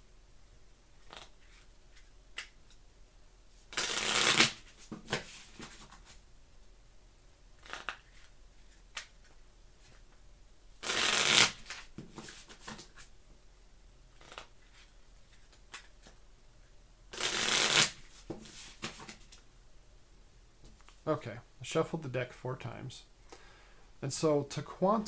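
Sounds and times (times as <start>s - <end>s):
playing cards riffle shuffled: 1.0s - 2.6s, 3.7s - 6.2s, 7.6s - 10.0s, 10.8s - 13.1s, 14.2s - 16.2s, 17.1s - 19.4s.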